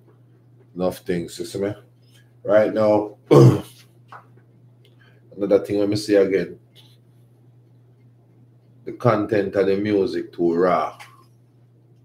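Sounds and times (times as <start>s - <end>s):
steady low hum: 0.0s - 12.0s
man talking: 0.8s - 1.8s, 2.5s - 3.8s, 5.3s - 6.6s, 8.9s - 11.2s.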